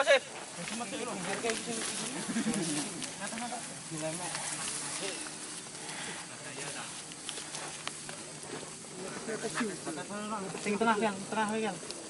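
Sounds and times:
distant people talking and calling: 0.0 - 12.0.

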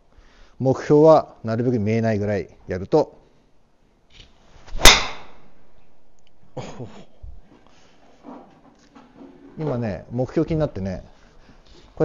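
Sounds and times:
golf club swing whoosh: 4.6 - 5.5
golf ball impact crack: 4.7 - 5.6.

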